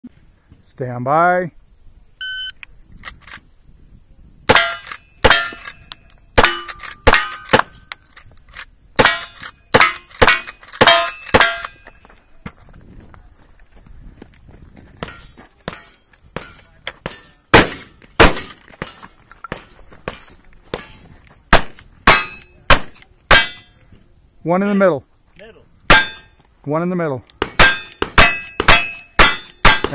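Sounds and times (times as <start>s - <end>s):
shot timer beep: 2.2s - 2.6s
steel target ringing: 4.5s - 5.6s, 9.0s - 11.8s, 22.1s - 22.6s, 23.3s - 23.8s, 25.9s - 26.4s, 27.6s - 29.9s
rifle shots: 4.5s - 5.8s, 6.4s - 7.8s, 15.1s - 23.6s, 27.4s - 29.9s.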